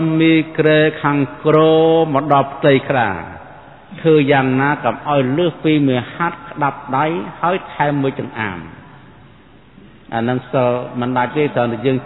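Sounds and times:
man chanting a sermon: 0.0 - 8.9, 10.1 - 12.0.

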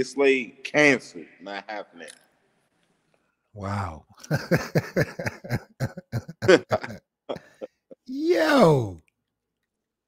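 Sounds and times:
man laughing: 4.2 - 8.9.

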